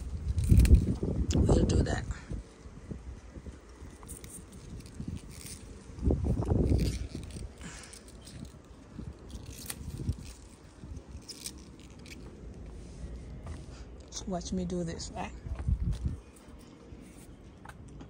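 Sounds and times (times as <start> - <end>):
pea pods snapping: 0.0 - 1.4, 3.6 - 12.3
rustling leaves: 0.0 - 14.0.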